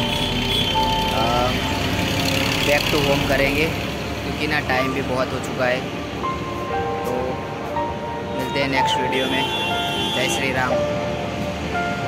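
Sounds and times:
background music: 0:00.0 - 0:12.0
man speaking: 0:08.4 - 0:09.5.

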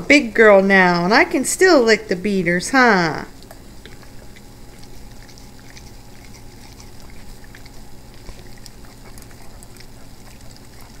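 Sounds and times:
faint low hum: 0:00.0 - 0:11.0
dog licking metal beaters: 0:03.3 - 0:11.0.

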